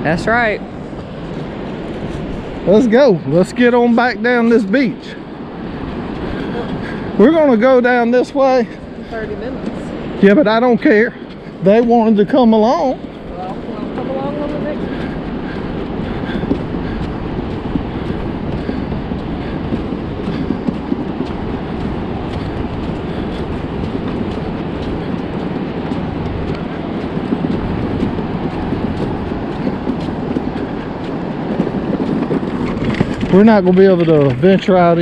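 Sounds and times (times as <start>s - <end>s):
seashells rattling in a wagon: 18.0s - 35.0s.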